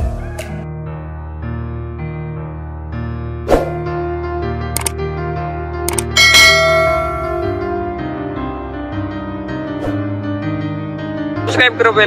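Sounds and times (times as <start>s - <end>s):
background piano music: 0.0s - 12.0s
bright bell ding: 6.2s - 7.7s.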